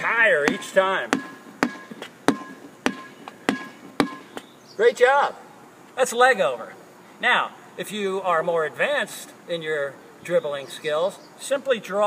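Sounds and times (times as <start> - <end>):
rubber ball bouncing on court: 0.5 - 4.5.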